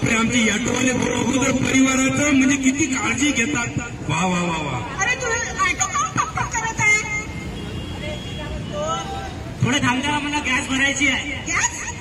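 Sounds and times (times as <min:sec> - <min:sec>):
city street traffic: 0:00.0 - 0:12.0.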